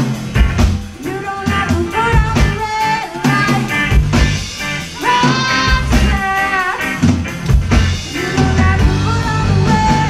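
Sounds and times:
drum kit beat: 0.0 - 10.0
electric bass: 0.0 - 10.0
electric guitars: 0.0 - 10.0.

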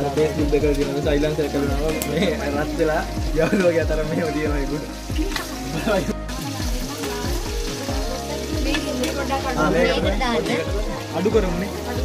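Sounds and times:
meat sizzling in oil: 0.0 - 12.0
music with bass beat: 0.0 - 12.0.

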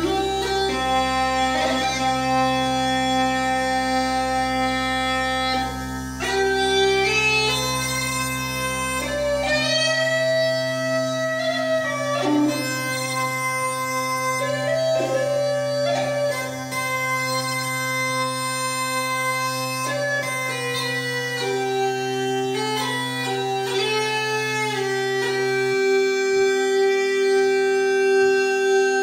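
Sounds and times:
uilleann pipes slow melody: 0.0 - 29.0.

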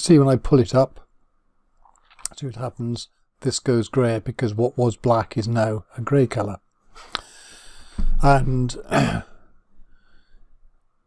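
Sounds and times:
man coughing: 8.8 - 9.4.

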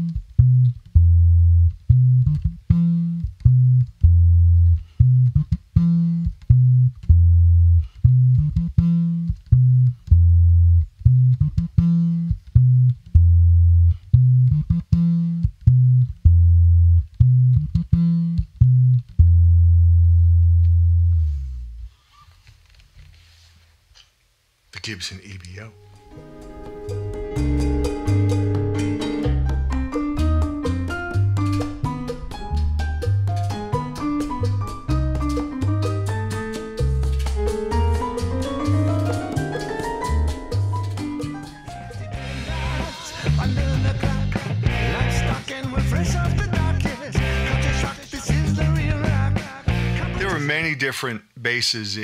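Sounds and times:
electric bass played fingerstyle: 0.0 - 21.9, 25.8 - 50.4.

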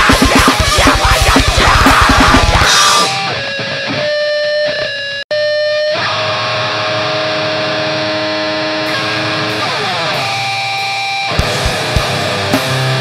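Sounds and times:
distorted electric guitar chords: 0.0 - 13.0.

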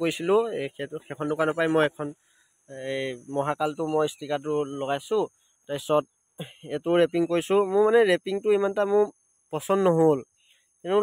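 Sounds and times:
man speaking: 0.0 - 10.2
insects droning: 0.0 - 11.0.

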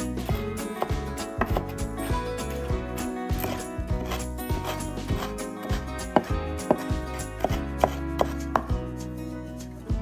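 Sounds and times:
background music: 0.0 - 10.0
knife chopping on wooden board: 0.8 - 1.8, 3.4 - 8.8.

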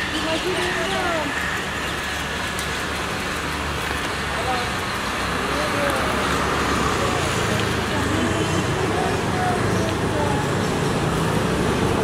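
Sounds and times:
people talking: 0.0 - 1.4, 4.3 - 10.8
road traffic rumble: 0.0 - 12.0.

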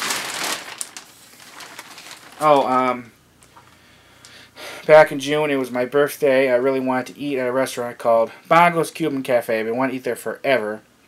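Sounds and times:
rustling and crinkling handling noise: 0.0 - 3.8.

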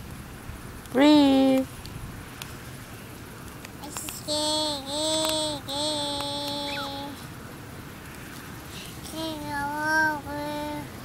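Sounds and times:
child singing drawn-out notes: 3.8 - 7.2, 8.9 - 11.0.

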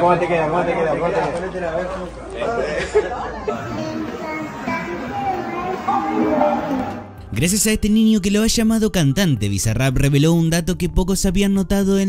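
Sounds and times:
background chatter: 0.0 - 7.4
voices talking: 0.7 - 7.6.

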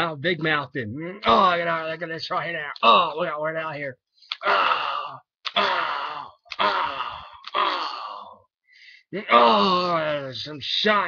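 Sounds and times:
person making vocal effects: 2.4 - 3.4, 4.3 - 8.5, 9.2 - 10.2.

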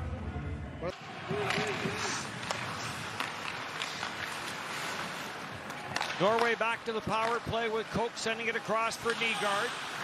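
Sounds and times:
crowd and arena noise: 0.0 - 10.0
hockey sticks and puck clicking: 1.3 - 10.0.

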